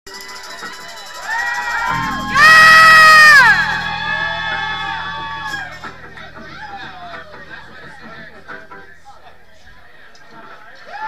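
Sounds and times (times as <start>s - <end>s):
audience cheering and whooping: 1.3s - 5.8s
loud whoop sliding down: 1.9s - 5.8s.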